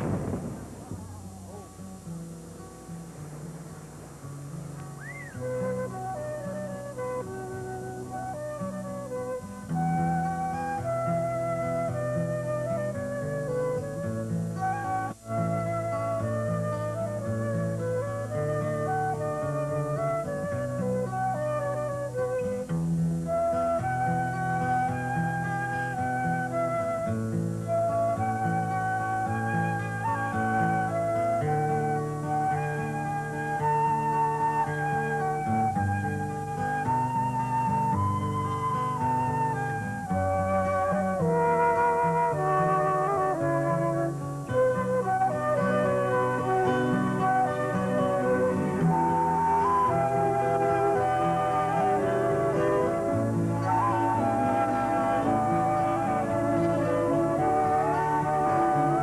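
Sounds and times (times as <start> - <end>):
held low notes: 0.0 - 7.8
flute melody: 0.0 - 59.0.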